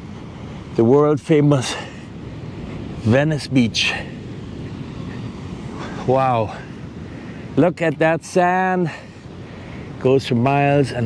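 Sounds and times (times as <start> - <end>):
distant surf hiss: 0.0 - 11.0.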